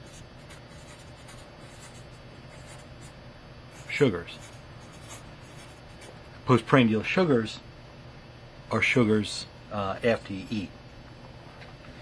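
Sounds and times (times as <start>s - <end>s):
marker pen scratching on paper: 0.0s - 3.1s, 3.8s - 6.2s.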